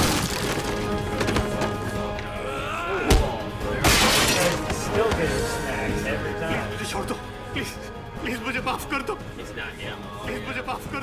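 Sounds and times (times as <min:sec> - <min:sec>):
dramatic background music: 0:00.0 - 0:11.0
loud shattering crash: 0:03.8 - 0:04.6.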